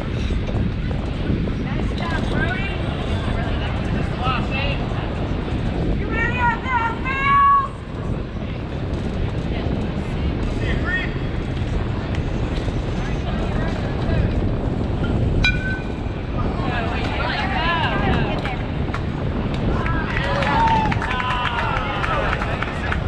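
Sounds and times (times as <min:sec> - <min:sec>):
wind rumble on microphone: 0:00.0 - 0:23.0.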